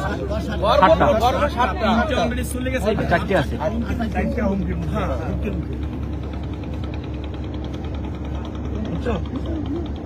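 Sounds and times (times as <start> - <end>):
engine running: 0.0 - 10.0.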